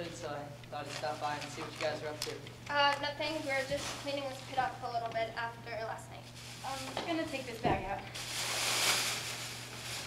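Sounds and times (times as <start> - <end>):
plastic garbage bag rustling: 3.2 - 4.7, 6.4 - 10.0.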